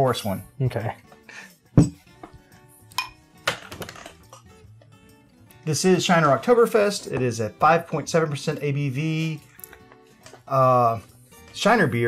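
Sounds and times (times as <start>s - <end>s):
glass clinks: 3.0s - 3.2s.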